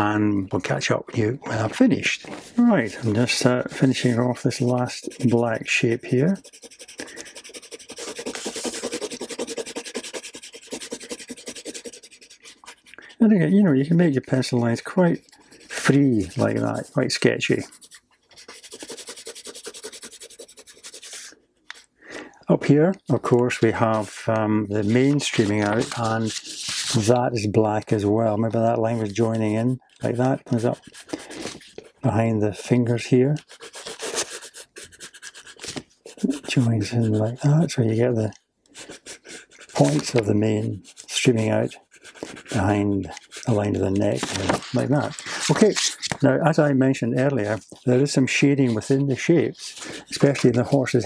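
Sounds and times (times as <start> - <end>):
pencil shading on paper: 2.8 - 14.0, 14.7 - 21.3, 28.8 - 31.7, 33.4 - 37.8, 38.7 - 45.9.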